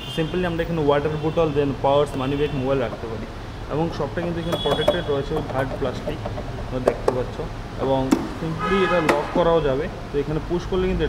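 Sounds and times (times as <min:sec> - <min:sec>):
man talking: 0:00.1 - 0:11.0.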